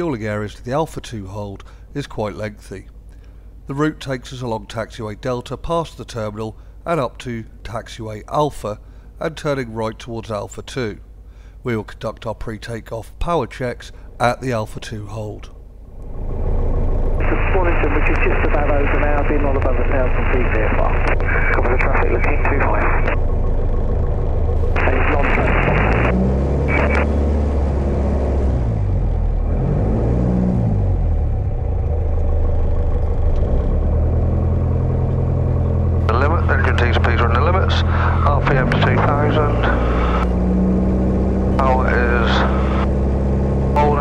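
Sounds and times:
light aircraft engine droning: 0:14.9 - 0:29.4, 0:30.8 - 0:44.0
radio voices over headset: 0:17.2 - 0:23.2, 0:24.6 - 0:27.1, 0:36.1 - 0:40.3, 0:41.6 - 0:42.9, 0:43.7 - 0:44.0.

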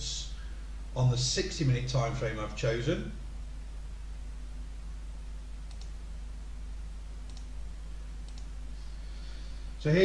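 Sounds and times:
steady low hum: 0:00.0 - 0:10.0
computer mouse clicking: 0:05.7 - 0:06.0, 0:07.3 - 0:07.5, 0:08.2 - 0:08.5.

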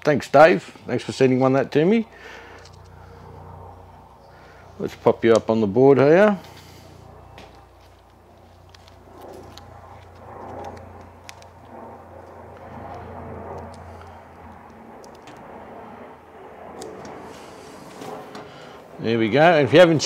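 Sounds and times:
low steady hum: 0:00.0 - 0:20.0
sticker being peeled and rubbed: 0:07.4 - 0:15.5.

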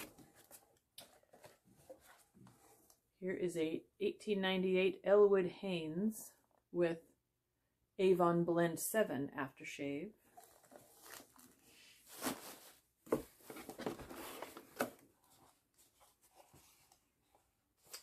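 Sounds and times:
cardboard scraping and rustling: 0:10.4 - 0:17.0.

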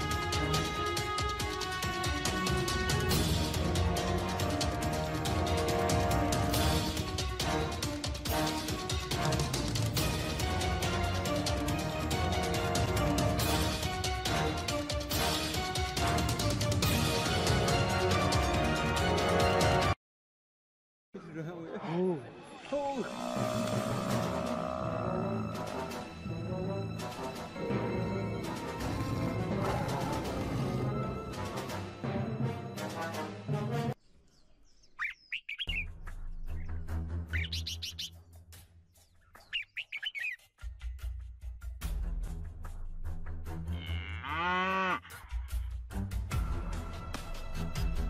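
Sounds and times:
background music: 0:00.0 - 0:20.0, 0:21.9 - 0:34.0, 0:35.6 - 0:48.0
buffalo bellowing: 0:22.9 - 0:25.5, 0:43.7 - 0:45.6
swooping vocal calls: 0:37.3 - 0:38.2, 0:39.2 - 0:40.4.

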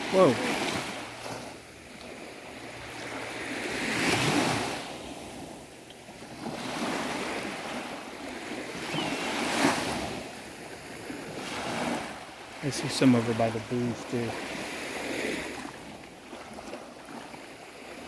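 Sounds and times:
small waves breaking on beach: 0:00.0 - 0:18.0.

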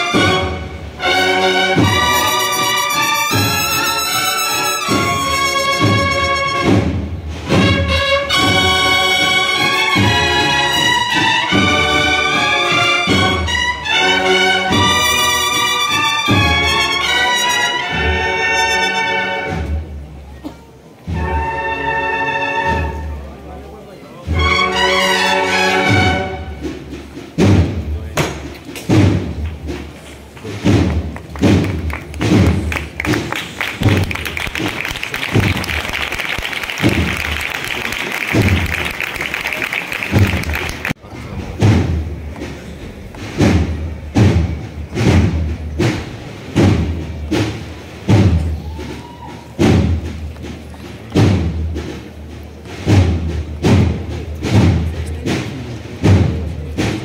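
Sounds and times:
procession drum beating: 0:00.0 - 0:18.1, 0:24.2 - 0:57.0.

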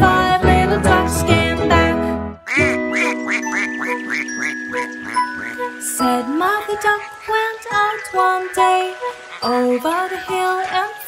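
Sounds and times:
sustained music chord: 0:02.7 - 0:07.0.

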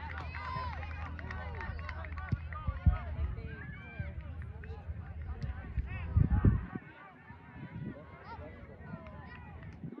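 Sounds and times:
outdoor crowd chatter: 0:00.0 - 0:10.0.

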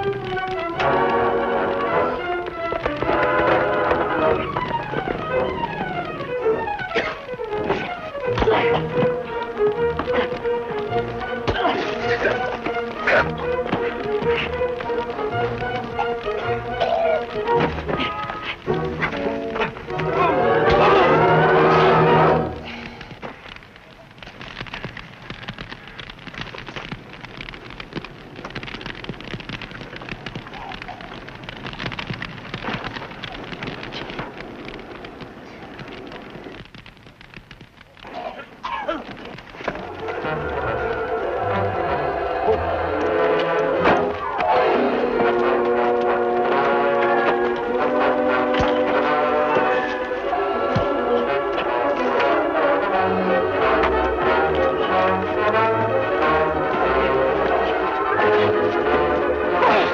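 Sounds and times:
orchestral music with brass: 0:00.0 - 0:22.6, 0:39.8 - 0:59.9
fire crackling: 0:00.0 - 0:59.9.

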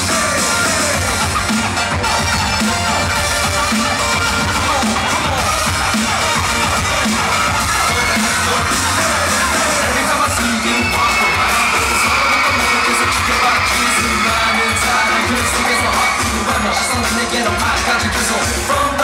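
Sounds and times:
crowd cheering and screaming: 0:00.0 - 0:19.0
pop dance music over sound system: 0:00.0 - 0:19.0.

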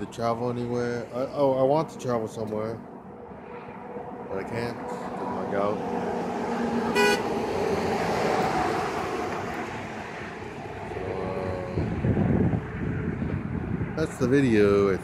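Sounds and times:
road traffic: 0:00.0 - 0:15.0
vehicle passing: 0:00.0 - 0:15.0
vehicle horn toot: 0:06.9 - 0:07.3.

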